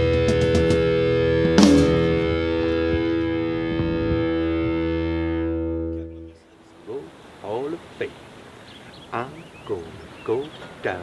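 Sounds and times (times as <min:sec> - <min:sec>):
distorted electric guitar chord: 0:00.0 - 0:06.3
sharp hit: 0:00.6 - 0:04.9.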